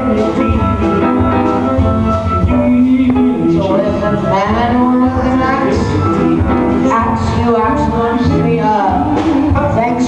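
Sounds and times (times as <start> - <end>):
electric bass: 0.0 - 10.0
piano: 0.0 - 10.0.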